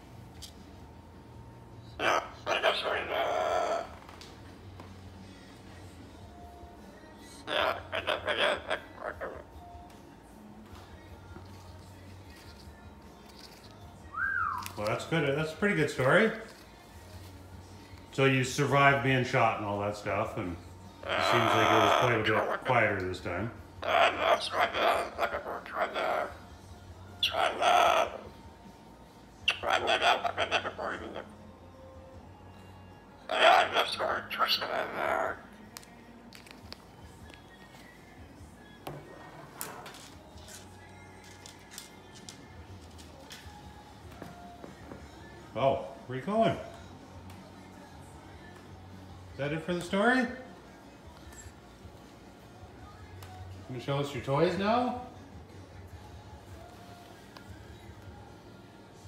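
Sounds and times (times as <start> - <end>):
cockatoo babbling: 1.9 - 4.1, 7.2 - 9.7, 14.2 - 16.6, 21.0 - 28.4, 29.4 - 31.6, 33.2 - 36.4
cockatoo drawn-out call: 29.5 - 31.4.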